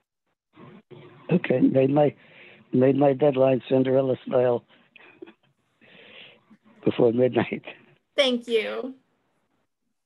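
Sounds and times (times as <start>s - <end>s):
woman speaking: 8.2s - 9.0s.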